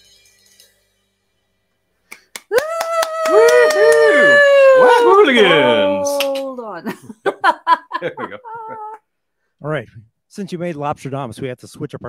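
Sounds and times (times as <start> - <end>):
voices howling into microphones: 2.8 - 6.4.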